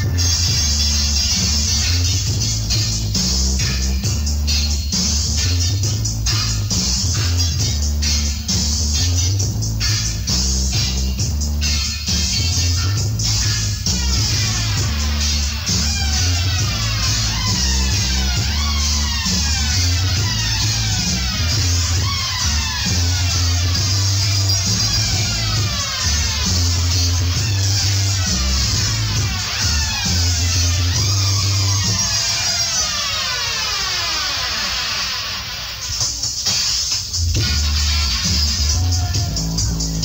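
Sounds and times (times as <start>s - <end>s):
reggae bass line: 0.0s - 33.3s, 35.9s - 40.0s.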